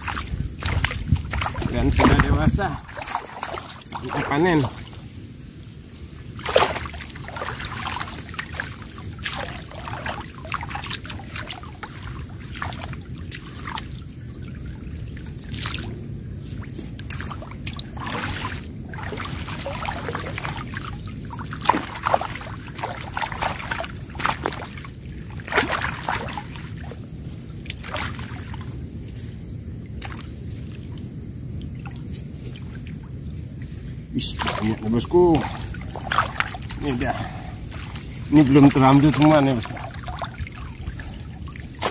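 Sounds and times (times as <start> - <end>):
sharp water splashes: 0.0 - 41.9
water sloshing and trickling: 0.0 - 41.9.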